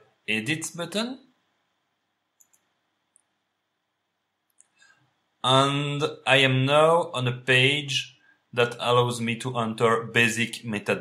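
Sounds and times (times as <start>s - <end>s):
mouse click: 2.4s - 3.3s.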